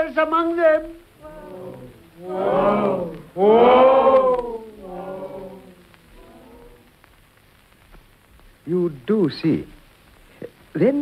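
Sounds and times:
chorus of voices shouting: 0:01.2 - 0:06.9.

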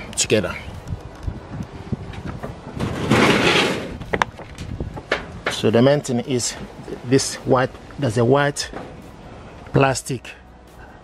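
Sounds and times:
metal sliding door on track: 0:02.7 - 0:04.0.

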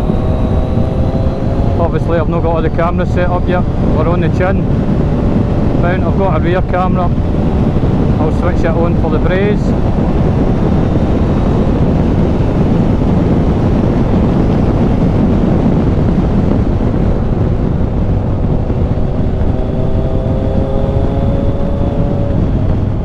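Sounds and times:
motorcycle engine running: 0:00.0 - 0:23.0
wind rushing over microphone: 0:00.0 - 0:23.0.

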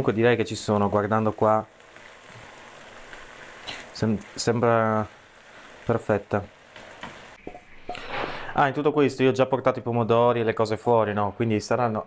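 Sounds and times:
pasta sizzling in a frying pan: 0:00.0 - 0:07.4.

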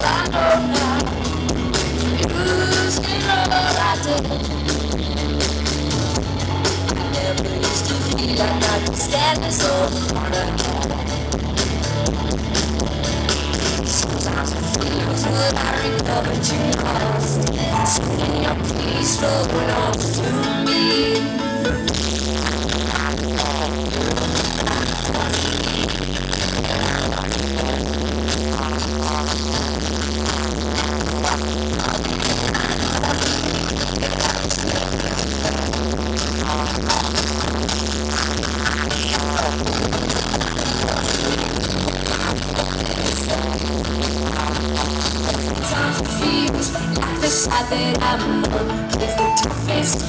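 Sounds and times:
bass line holding long notes: 0:00.0 - 0:50.0
live band playing synth-pop: 0:00.0 - 0:50.0.

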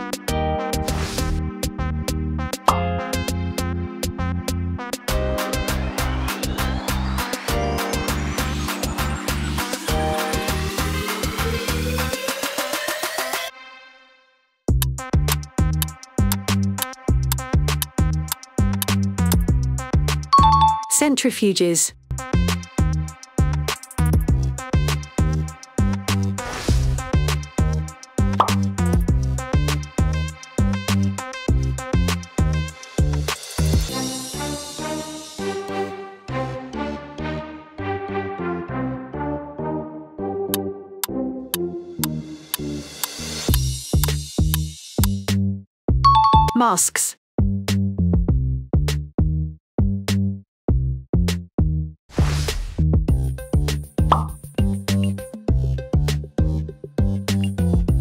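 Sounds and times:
electronic background music: 0:00.0 - 0:13.5, 0:20.4 - 0:21.2, 0:46.1 - 0:46.6, 0:53.5 - 0:58.0
electronic music with steady beat: 0:05.0 - 0:11.5
rising pop sound effect: 0:20.4 - 0:20.9, 0:28.4 - 0:28.6, 0:46.1 - 0:46.8, 0:54.1 - 0:54.4
short pop sound effect: 0:28.4 - 0:28.6.

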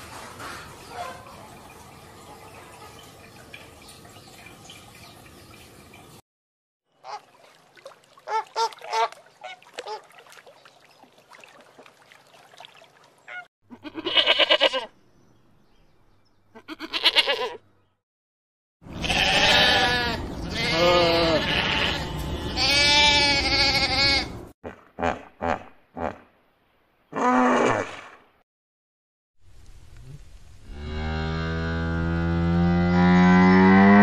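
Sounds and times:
goats bleating: 0:13.7 - 0:14.9, 0:16.6 - 0:17.6, 0:18.9 - 0:24.4.

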